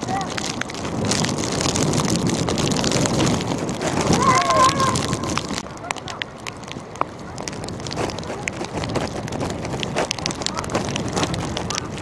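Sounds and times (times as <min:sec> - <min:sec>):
rain on microphone: 0:00.0 - 0:12.0
wind on microphone: 0:00.0 - 0:12.0
person shouting: 0:04.1 - 0:05.4.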